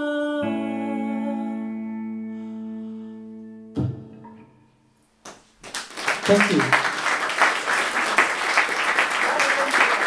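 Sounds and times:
applause: 0:05.6 - 0:10.0.

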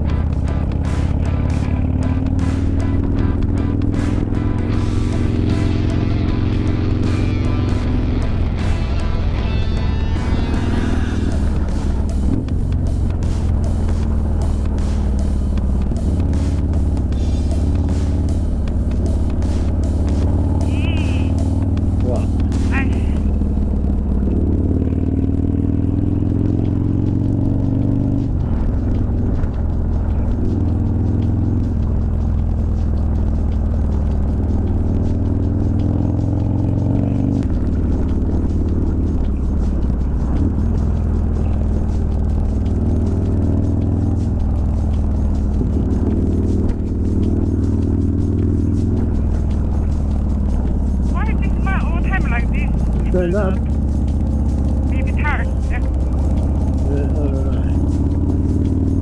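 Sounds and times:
motorcycle engine running: 0:00.0 - 0:59.0.

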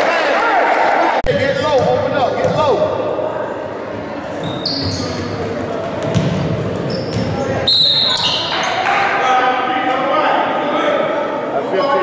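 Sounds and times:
echoing crowd chatter: 0:00.0 - 0:12.0
short high squeaks: 0:04.4 - 0:05.2
basketball bouncing on wooden floor: 0:06.0 - 0:06.5, 0:07.1 - 0:07.4.

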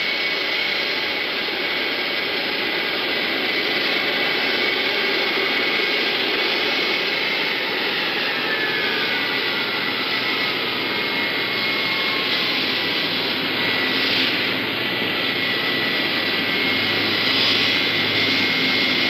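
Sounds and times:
jet engines rushing and whining: 0:00.0 - 0:19.0.

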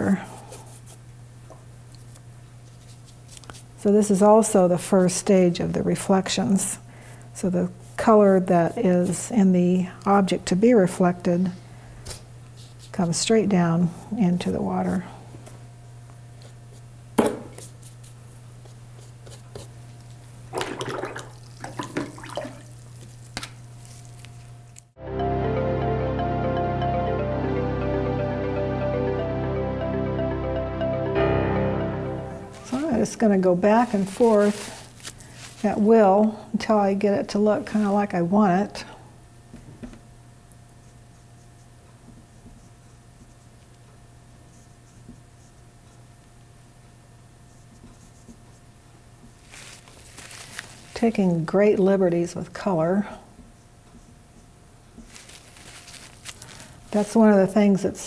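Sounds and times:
low room hum: 0:00.0 - 0:58.0
paintbrush swishing and dabbing: 0:32.5 - 0:35.9
brush scrubbing on canvas: 0:33.7 - 0:35.8.

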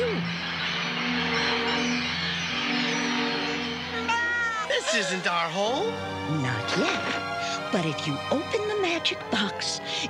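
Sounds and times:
background music chords: 0:00.0 - 0:10.0.

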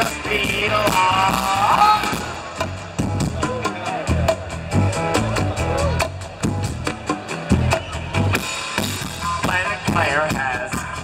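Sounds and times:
person singing: 0:00.0 - 0:02.4
live rock band playing: 0:00.0 - 0:11.0.

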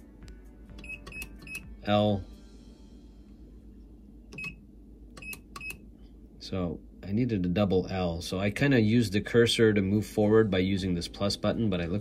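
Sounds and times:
keypad beeps: 0:00.8 - 0:01.7, 0:04.3 - 0:04.6, 0:05.2 - 0:05.8.

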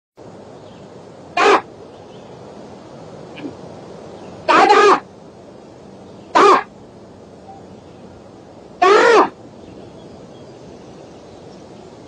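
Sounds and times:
steady hiss: 0:00.2 - 0:12.0
harsh bird call: 0:01.3 - 0:01.7, 0:04.2 - 0:05.2, 0:06.2 - 0:06.8, 0:08.8 - 0:09.9.

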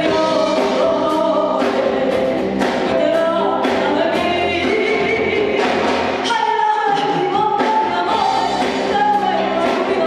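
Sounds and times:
live band guitar and drums: 0:00.0 - 0:10.0.

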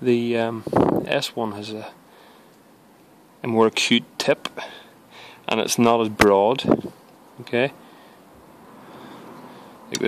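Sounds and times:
man speaking: 0:00.0 - 0:02.0, 0:03.4 - 0:04.8, 0:05.4 - 0:06.8, 0:07.4 - 0:07.8
background hiss: 0:00.0 - 0:10.0.

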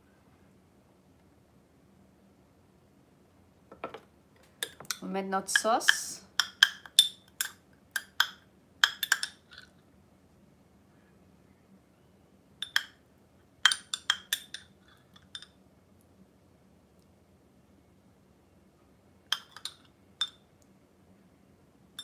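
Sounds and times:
metal spoon clinking on ceramic: 0:04.6 - 0:09.7, 0:12.6 - 0:13.0, 0:13.6 - 0:15.6, 0:19.3 - 0:20.4.

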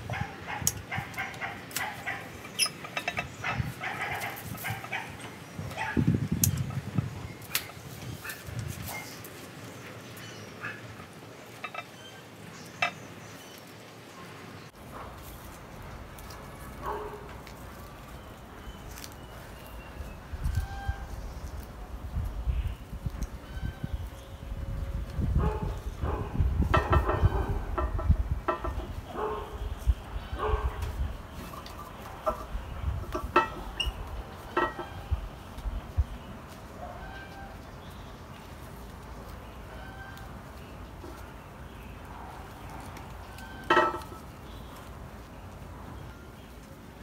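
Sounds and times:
chickens clucking: 0:00.0 - 0:09.2, 0:25.4 - 0:37.8, 0:38.4 - 0:45.6
low rumbling handling noise: 0:14.8 - 0:46.0.

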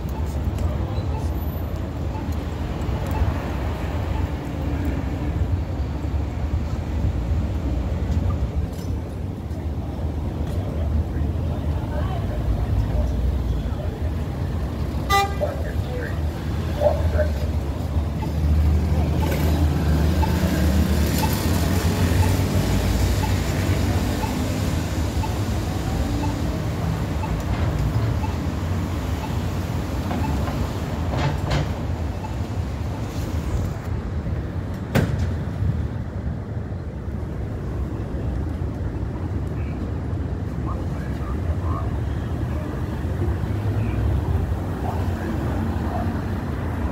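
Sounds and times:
cars passing: 0:00.0 - 0:46.9
car horn toot: 0:15.0 - 0:15.5.

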